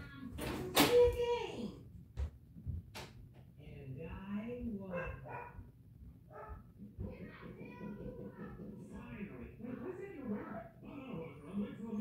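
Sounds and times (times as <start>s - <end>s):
dog barking: 4.9s - 5.7s, 6.3s - 6.7s.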